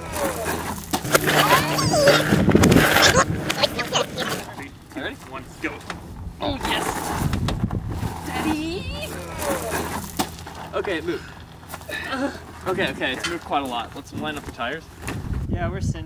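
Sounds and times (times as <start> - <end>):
men grunting and calling out: 1.2 - 4.5.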